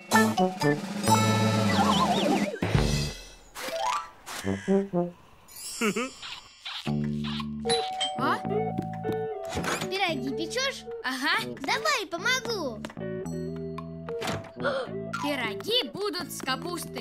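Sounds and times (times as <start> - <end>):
light children's music: 6.9 - 17.0.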